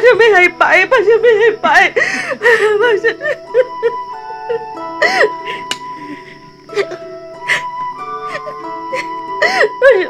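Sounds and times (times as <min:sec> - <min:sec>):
soft melodic drama score: 0:00.0 - 0:10.0
woman sobbing: 0:00.0 - 0:10.0.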